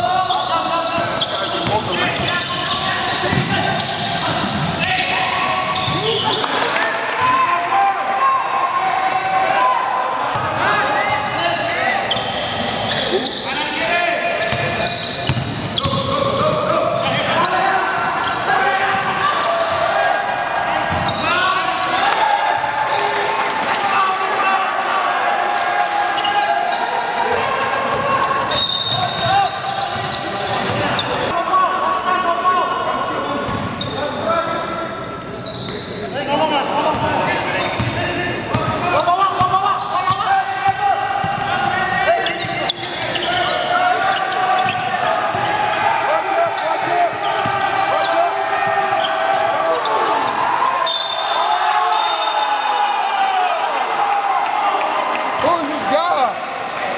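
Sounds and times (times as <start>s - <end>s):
voices calling out and talking: 0.0s - 56.9s.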